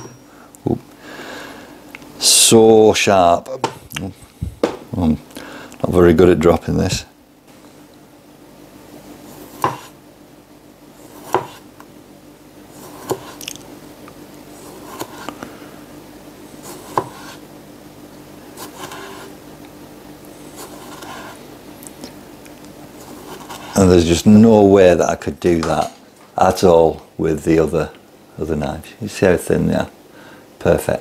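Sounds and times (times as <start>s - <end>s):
knife slicing tomatoes: 9.4s - 10.0s, 11.0s - 11.7s, 12.8s - 13.6s, 14.6s - 15.4s, 16.6s - 17.4s
knife tapping cutting board: 9.6s - 9.9s.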